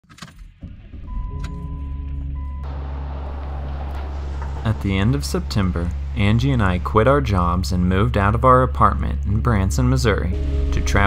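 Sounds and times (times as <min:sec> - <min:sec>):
car engine starting and idling: 0:00.2 - 0:11.0
steady tone: 0:02.4 - 0:11.0.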